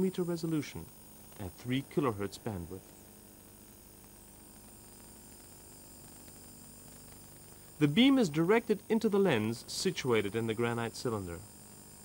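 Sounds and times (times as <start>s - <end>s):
faint steady hiss: 0.0s - 12.0s
thin steady tones: 0.0s - 12.0s
narrator speaking: 1.4s - 2.8s, 7.8s - 11.4s.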